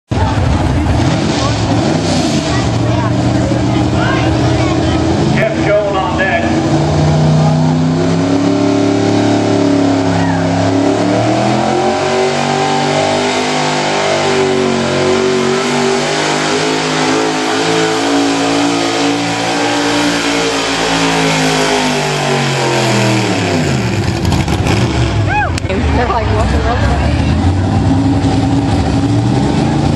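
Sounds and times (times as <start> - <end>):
pickup truck engine running hard: 0.1 - 29.9.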